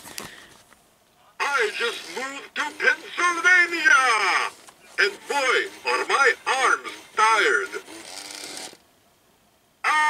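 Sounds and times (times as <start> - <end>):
recorded voice from speaker: 1.2 - 8.0.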